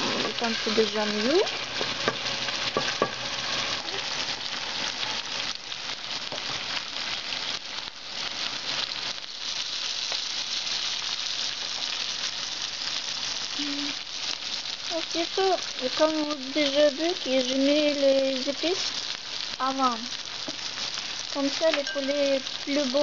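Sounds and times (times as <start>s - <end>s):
food sizzling in a pan: 0.0s - 23.0s.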